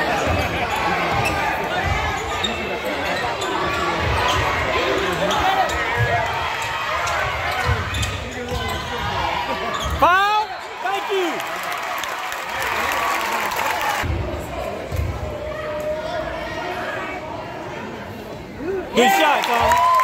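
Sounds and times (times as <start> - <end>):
babble of spectators' voices: 0.0 - 20.0
sneaker squeaks: 7.5 - 10.1.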